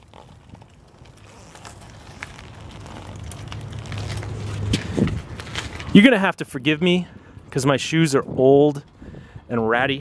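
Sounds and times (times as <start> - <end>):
bike tyres crackling on leaves: 0.0 - 6.3
wind buffeting microphone: 4.6 - 5.5, 7.4 - 10.0.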